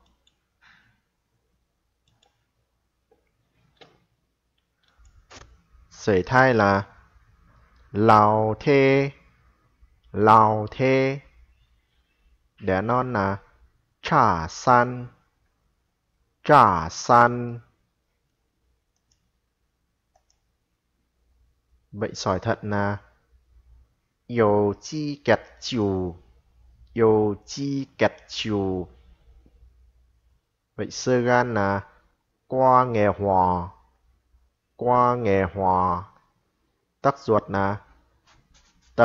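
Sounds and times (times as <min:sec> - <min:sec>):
computer mouse clicks: 0:00.0 - 0:00.8, 0:02.0 - 0:02.5, 0:03.1 - 0:05.6, 0:18.3 - 0:19.3, 0:20.1 - 0:20.5.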